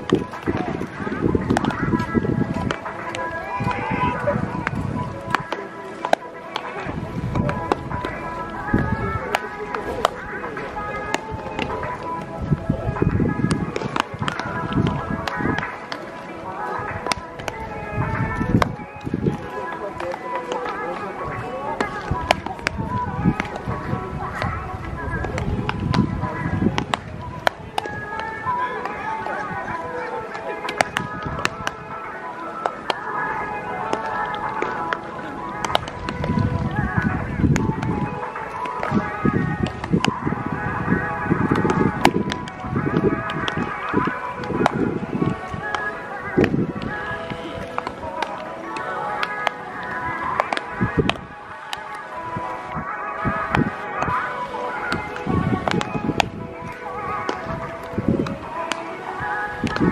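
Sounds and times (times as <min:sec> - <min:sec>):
baseballs smacking into gloves: 0:00.0 - 0:03.8, 0:04.6 - 0:12.4, 0:13.0 - 0:16.1, 0:16.8 - 0:29.4, 0:30.3 - 0:40.2, 0:41.4 - 0:52.2, 0:52.8 - 0:59.9
background music: 0:00.0 - 0:59.9.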